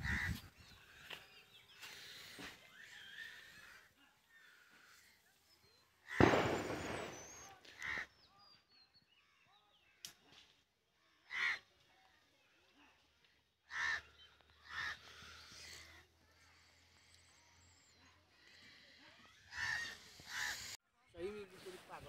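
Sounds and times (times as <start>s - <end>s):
crows cawing: 0.0s - 1.2s, 6.0s - 8.2s, 11.0s - 11.9s, 13.7s - 16.0s, 19.3s - 20.8s
small birds chirping: 0.0s - 22.0s.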